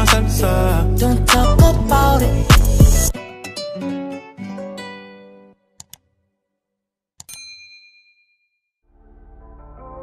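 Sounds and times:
music: 0:00.0 - 0:05.8, 0:08.8 - 0:10.0
bell-like ding: 0:07.3 - 0:08.7.

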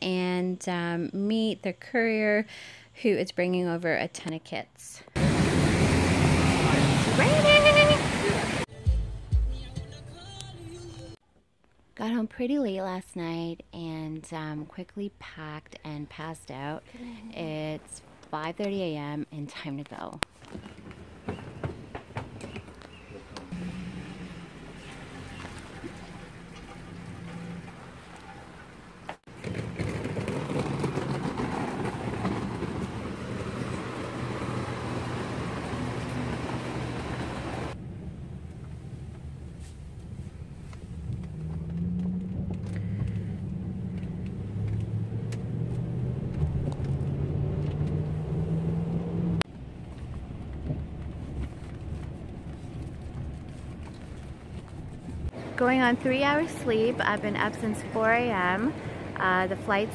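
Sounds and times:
car engine accelerating: 0:05.2 - 0:08.7, 0:23.3 - 0:29.2, 0:30.8 - 0:55.4
road noise inside car: 0:05.2 - 0:08.7, 0:21.0 - 0:29.4, 0:31.6 - 0:59.9.

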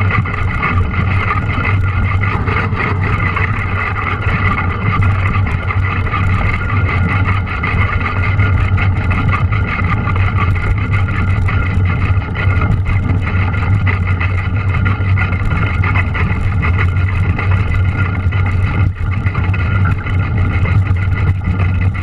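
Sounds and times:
bike rattles and ticks: 0:00.0 - 0:22.0
wind and tyre rumble: 0:00.0 - 0:22.0.

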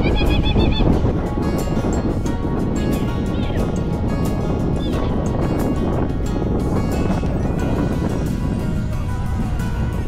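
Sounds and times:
background music: 0:00.0 - 0:10.0
sled rumbling over snow: 0:00.0 - 0:10.0
wind on microphone: 0:00.0 - 0:10.0.

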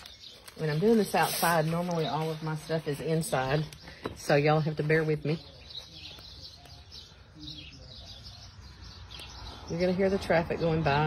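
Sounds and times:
birds chirping: 0:00.0 - 0:11.0
traffic rumble: 0:00.0 - 0:11.0.

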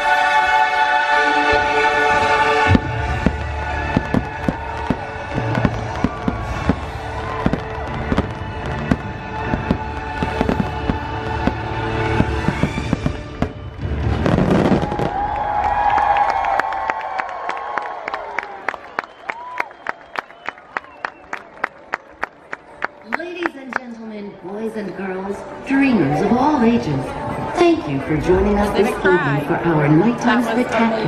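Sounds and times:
orchestral music: 0:00.0 - 0:15.4
fireworks bursting: 0:02.1 - 0:15.4.

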